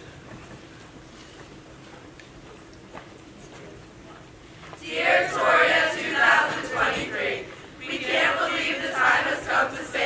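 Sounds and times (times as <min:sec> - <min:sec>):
young voices singing together: 0:04.8 - 0:10.0.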